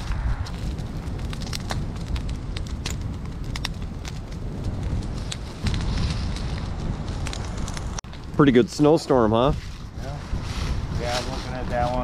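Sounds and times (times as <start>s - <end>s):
branches burning and crackling: 0.0s - 12.0s
low fire rumble: 0.0s - 12.0s.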